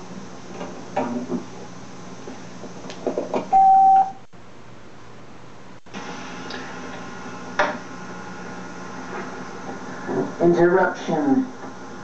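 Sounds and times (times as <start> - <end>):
tape hiss and hum: 0.0 - 12.0
electronic beep: 3.5 - 4.2.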